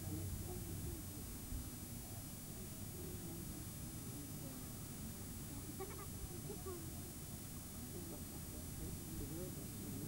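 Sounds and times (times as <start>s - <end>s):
faint distant voices: 0.0s - 10.0s
steady hiss: 0.0s - 10.0s.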